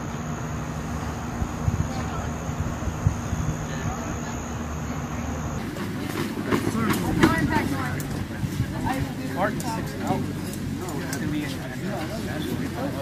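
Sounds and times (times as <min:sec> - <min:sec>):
low rumble with high whine: 0:00.0 - 0:05.6
distant voices talking outdoors: 0:00.0 - 0:13.0.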